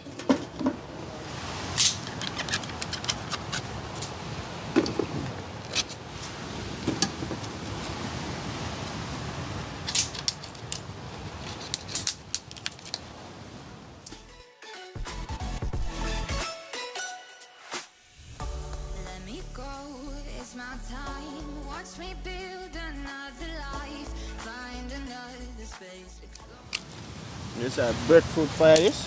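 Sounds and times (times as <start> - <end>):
steady hiss: 26.8 - 29.0.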